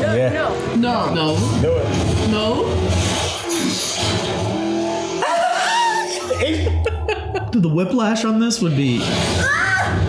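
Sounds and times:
car engine revving: 0.0s - 9.5s.

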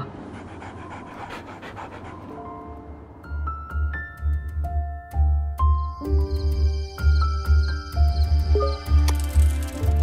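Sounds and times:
dogs panting: 0.0s - 2.7s.

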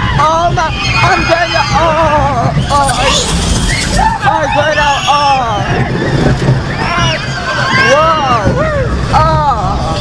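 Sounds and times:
roller coaster rumbling on track: 0.0s - 10.0s
wordless voices: 0.2s - 5.6s.

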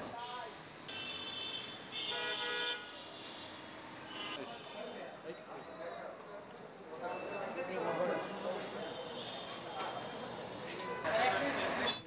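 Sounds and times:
low street background noise: 0.0s - 12.0s
vehicle horn: 0.9s - 3.0s.

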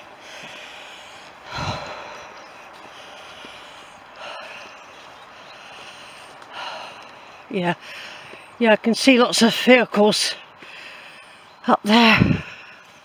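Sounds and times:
person breathing: 0.0s - 8.6s, 10.4s - 13.0s.

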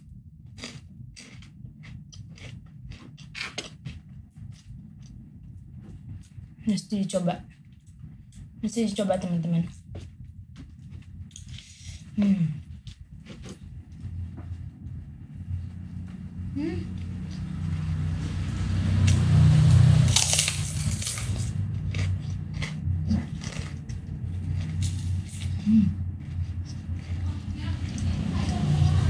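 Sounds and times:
cracker crunching: 0.5s - 5.2s, 19.0s - 29.0s.

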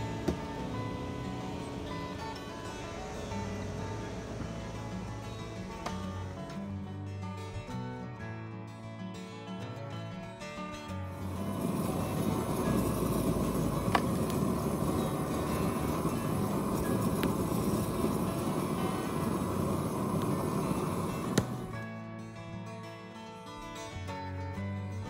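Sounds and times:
propane torch flame rushing: 0.0s - 6.1s, 11.1s - 21.8s
guitar music: 0.0s - 25.0s
sharp cracks of burning wood: 11.1s - 21.8s.

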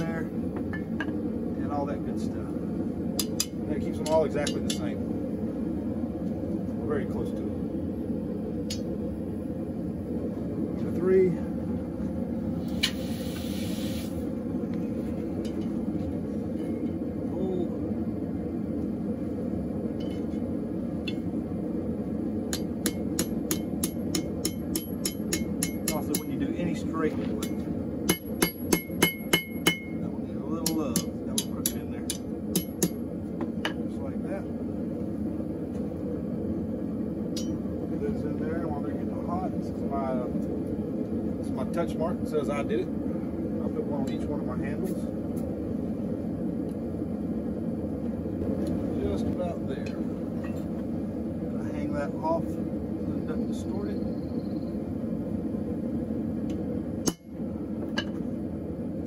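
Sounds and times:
hammer striking steel on anvil: 3.2s - 5.0s, 22.5s - 26.4s, 27.4s - 30.0s, 30.6s - 33.0s, 37.4s - 37.6s, 57.0s - 57.3s.

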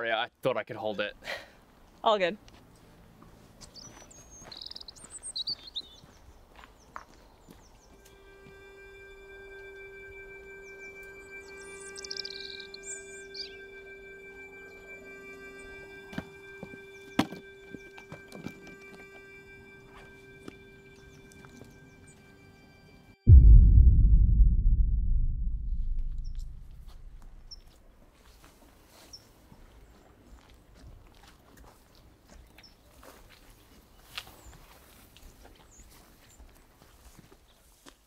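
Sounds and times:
birds chirping: 3.6s - 23.0s, 27.0s - 27.8s
low drone background music: 7.8s - 27.7s.

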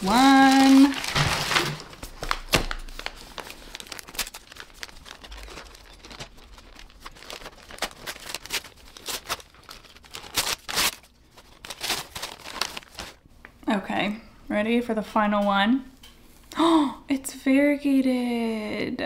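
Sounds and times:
packing paper crinkling: 0.0s - 13.3s.

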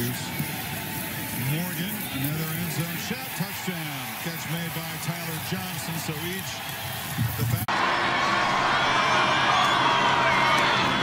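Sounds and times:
crowd cheering: 0.0s - 11.0s
stadium crowd voices: 0.0s - 11.0s.

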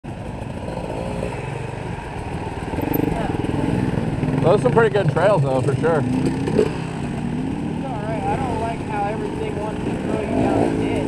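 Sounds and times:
dirt bike engines idling: 0.1s - 11.0s.

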